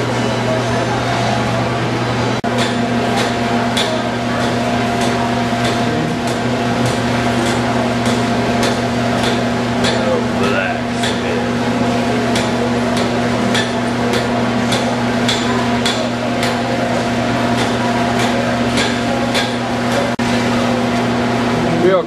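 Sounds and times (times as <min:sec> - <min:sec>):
machine hum: 0:00.0 - 0:22.0.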